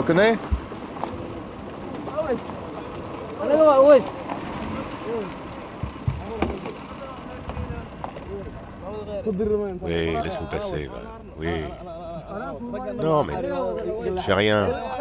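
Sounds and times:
men calling out: 0:09.8 - 0:15.0.

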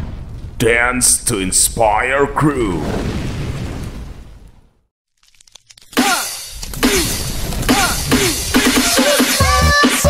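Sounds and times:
explosion-like rumbling boom: 0:00.0 - 0:01.0, 0:02.7 - 0:04.8.

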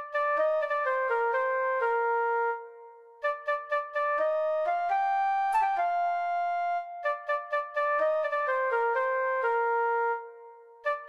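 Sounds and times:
synth flute melody: 0:00.0 - 0:11.0.

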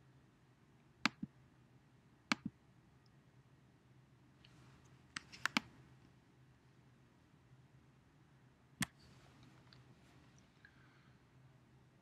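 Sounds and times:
faint steady hum: 0:00.0 - 0:12.0
computer mouse clicks: 0:04.4 - 0:05.7.

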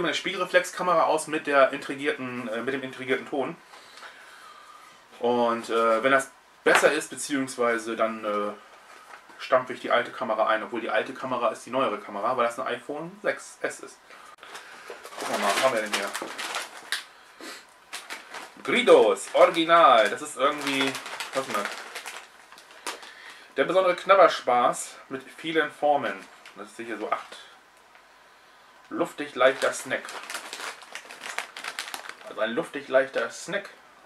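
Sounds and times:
crisp packet crinkling: 0:14.4 - 0:17.1, 0:17.9 - 0:23.5, 0:26.1 - 0:27.4, 0:29.3 - 0:33.3.

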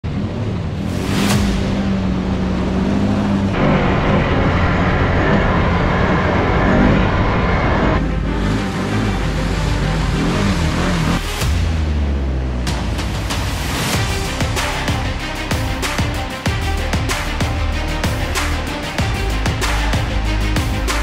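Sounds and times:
atv engine revving: 0:00.0 - 0:12.8
background music: 0:00.8 - 0:21.0.

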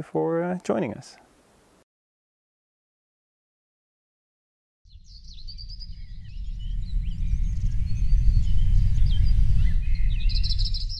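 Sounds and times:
birds chirping and trilling: 0:04.9 - 0:10.9
loud low rumble: 0:05.4 - 0:10.9.

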